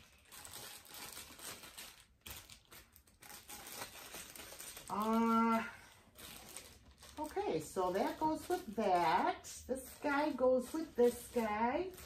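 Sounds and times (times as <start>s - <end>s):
rustling and crinkling: 0.0s - 12.0s.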